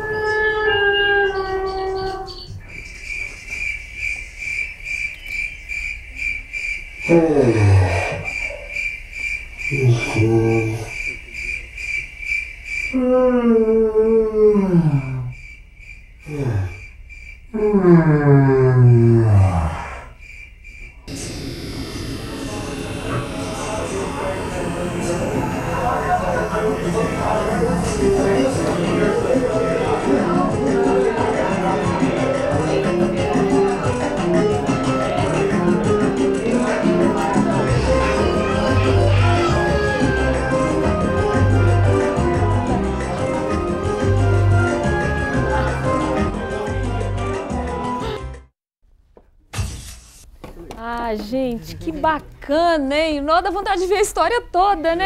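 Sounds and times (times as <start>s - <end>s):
faint high chirps: 0.0s - 7.2s
quiet soundtrack: 21.1s - 34.2s
organ-like soundtrack music: 21.1s - 48.5s
loud crash: 49.5s - 50.3s.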